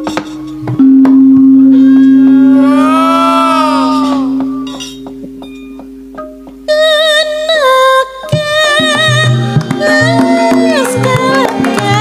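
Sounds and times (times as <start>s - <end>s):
gamelan melodic line: 0.0s - 6.8s, 8.2s - 12.0s
gamelan low ringing note: 0.0s - 7.5s.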